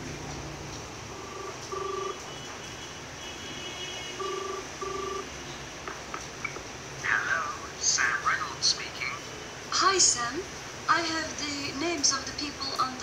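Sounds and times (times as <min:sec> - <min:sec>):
telephone ringing tone: 0:01.1 - 0:02.4, 0:04.2 - 0:05.3.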